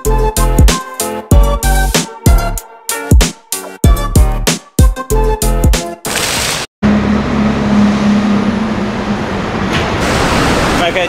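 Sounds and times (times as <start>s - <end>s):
bus engine drone: 6.8s - 11.0s.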